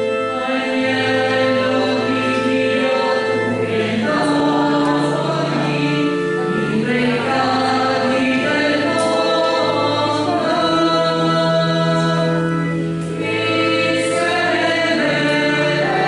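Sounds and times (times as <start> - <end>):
group singing a hymn: 0.0 - 16.0.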